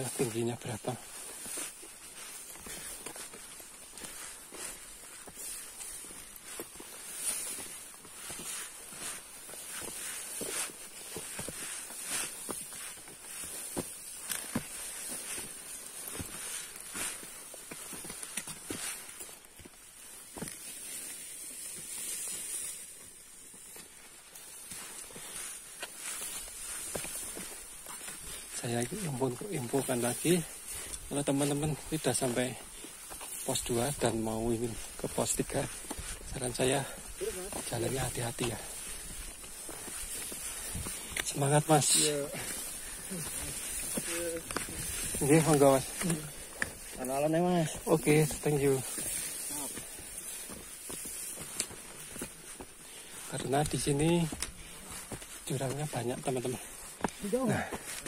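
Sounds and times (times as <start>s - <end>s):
footsteps on muddy dirt trail: 0.0s - 58.0s
steady high-pitched hiss: 0.0s - 58.0s.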